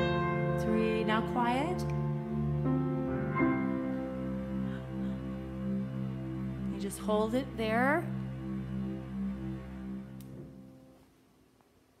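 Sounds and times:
piano chord: 0.0s - 11.0s.

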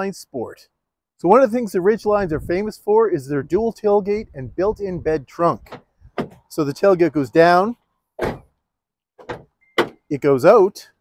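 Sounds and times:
tailgate clunk: 5.6s - 6.5s, 8.2s - 8.6s, 9.2s - 10.1s
tailgate knocks: 5.7s - 6.5s, 8.2s - 8.5s, 9.2s - 10.1s.

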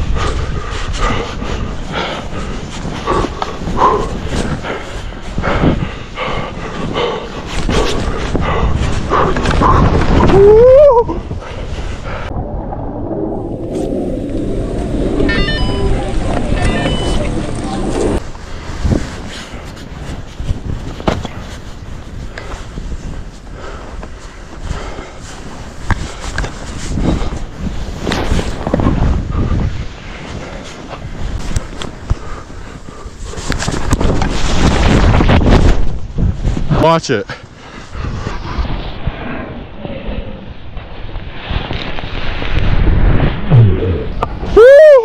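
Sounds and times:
wind buffeting microphone: 0.0s - 45.0s
chairlift machinery rumbling: 11.5s - 18.3s
high-pitched squeaks: 15.1s - 18.2s.

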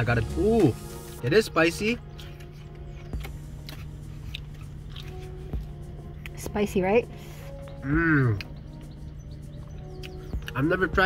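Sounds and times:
man chewing food: 2.0s - 6.4s, 7.1s - 10.6s
mouth clicks: 7.6s - 10.7s.

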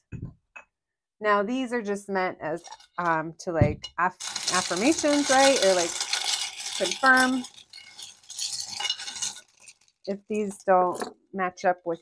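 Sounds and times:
metal charms clinking in glass dish: 4.1s - 11.1s.

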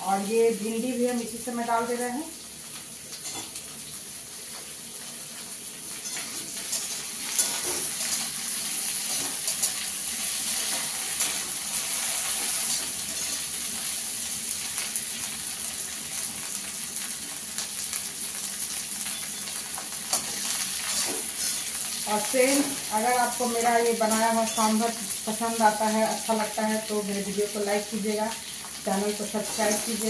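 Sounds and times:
vegetables sizzling in hot oil: 0.0s - 30.0s.

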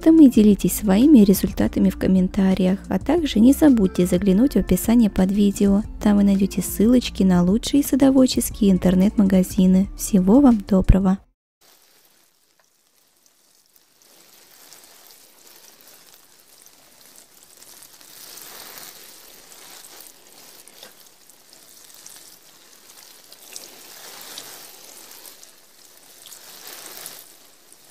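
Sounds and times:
rain falling: 11.6s - 27.9s.

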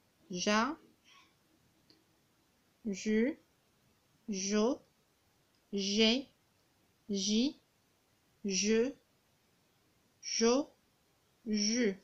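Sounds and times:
woman speaking: 0.3s - 0.8s, 2.8s - 3.5s, 4.3s - 4.9s, 5.7s - 6.4s, 7.1s - 7.6s, 8.4s - 9.0s, 10.2s - 10.8s, 11.5s - 12.0s.

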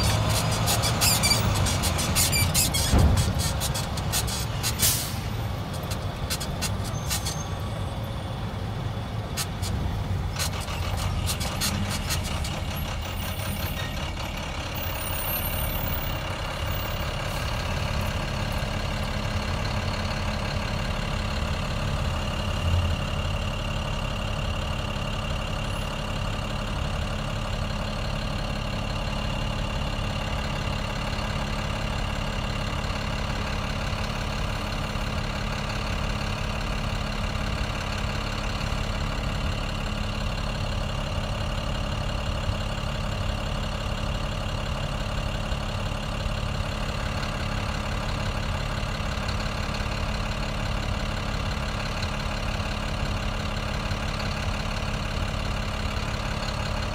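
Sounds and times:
vehicle engine idling: 0.0s - 56.9s.

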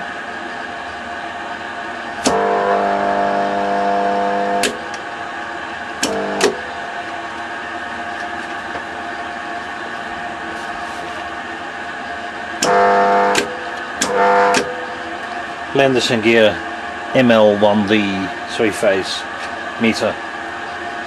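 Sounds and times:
steady electrical hum: 0.0s - 21.0s
relay coil buzzing: 2.1s - 8.1s, 12.1s - 16.7s
relay clicks: 6.0s - 6.6s.

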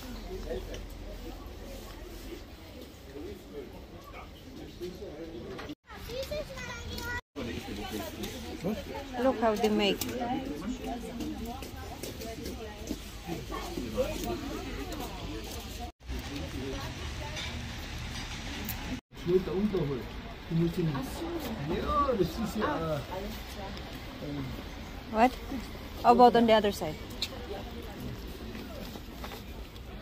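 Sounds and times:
traffic rumble: 0.0s - 30.0s
voices of people milling around: 0.0s - 30.0s.

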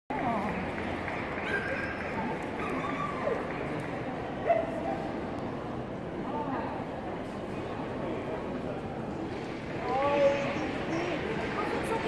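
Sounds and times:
crowd talking in hall: 0.1s - 12.0s.

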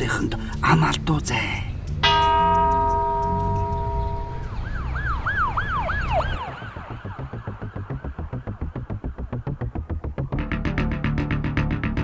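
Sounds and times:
background music: 0.0s - 12.0s
bell-like chime: 2.0s - 4.7s
cartoon police siren effect: 4.4s - 8.9s.

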